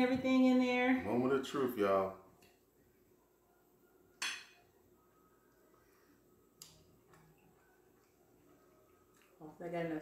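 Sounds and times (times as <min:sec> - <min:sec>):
fork clinking on ceramic plate: 0:04.2 - 0:04.6.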